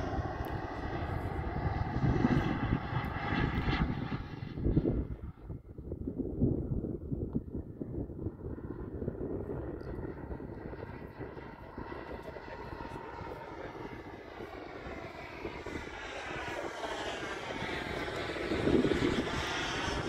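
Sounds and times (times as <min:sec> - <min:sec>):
model jet turbine whining: 0:07.8 - 0:20.0.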